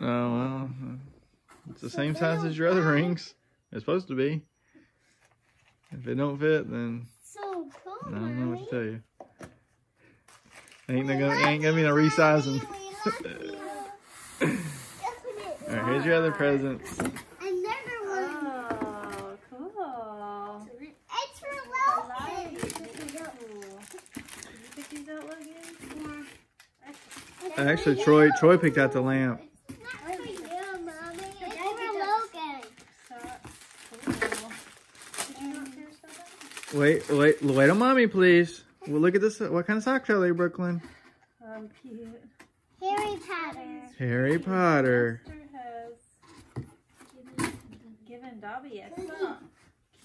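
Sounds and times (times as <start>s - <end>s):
gift wrapping rustling: 4.9s - 6.4s, 7.6s - 39.3s
woman speaking: 18.4s - 21.0s.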